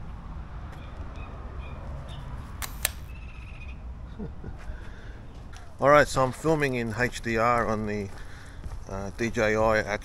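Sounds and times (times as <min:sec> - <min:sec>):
camera shutter clicks: 0:02.6 - 0:03.1.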